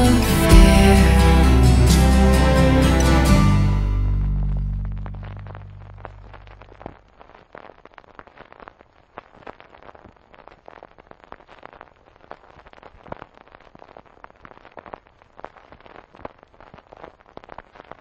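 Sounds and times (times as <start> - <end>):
record surface crackling: 3.9 - 18.0.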